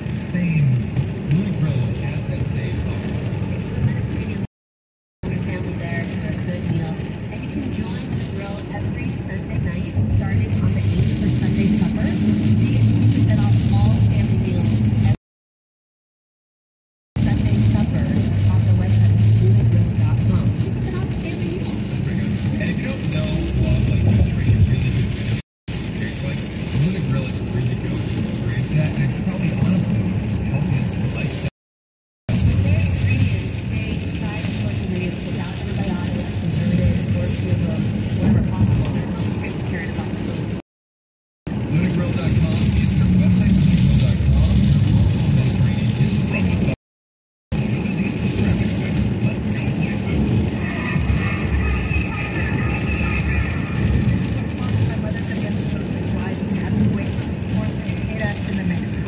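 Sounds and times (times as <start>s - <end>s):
car engine and tyre hum: 5.4s - 15.2s, 17.2s - 31.5s.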